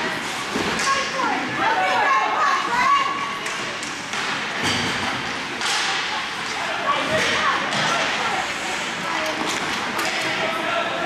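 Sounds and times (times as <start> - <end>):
hockey sticks knocking puck: 3.4 - 8.2, 9.2 - 10.4.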